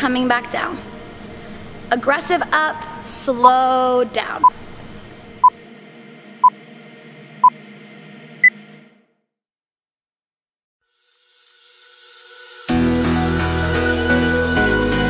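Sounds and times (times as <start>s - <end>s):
faint background music: 0.0s - 4.6s.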